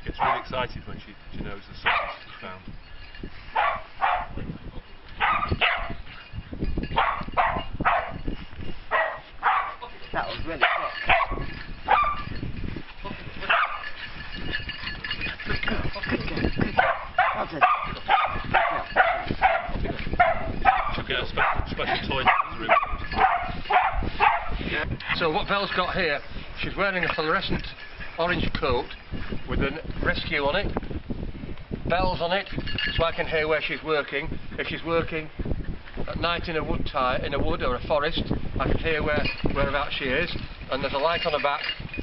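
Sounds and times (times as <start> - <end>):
people talking: 0.1 - 2.7, 9.8 - 10.8, 15.5 - 16.6, 20.9 - 22.8, 24.7 - 30.8, 31.9 - 35.3, 36.1 - 41.7
dog barking excitedly: 0.2 - 0.5, 1.8 - 2.2, 3.6 - 4.4, 5.2 - 6.0, 6.9 - 8.2, 8.9 - 9.8, 10.6 - 12.2, 13.5 - 13.8, 16.8 - 24.6
dog whining and yipping: 10.6 - 12.2.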